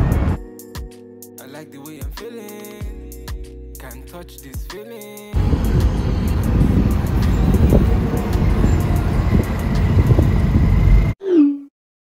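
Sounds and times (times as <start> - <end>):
road noise inside moving car: 5.4 - 11.1.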